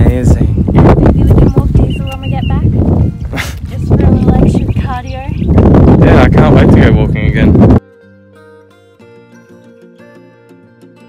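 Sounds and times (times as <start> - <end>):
wind buffeting microphone: 0.0 - 7.8.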